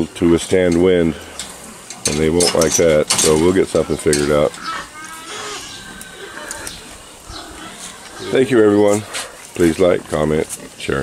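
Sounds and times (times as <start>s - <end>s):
pigs grunting: 3.2s - 11.0s.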